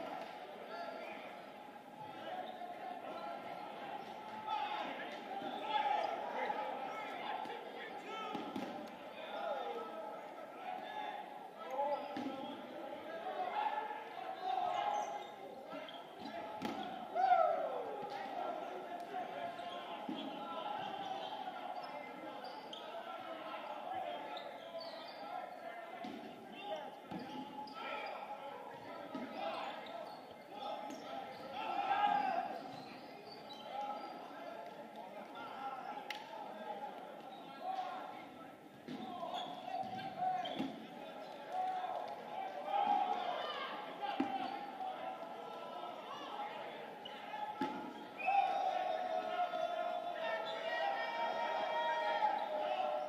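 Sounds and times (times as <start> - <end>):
players shouting: 0.0 - 33.0, 39.0 - 53.0.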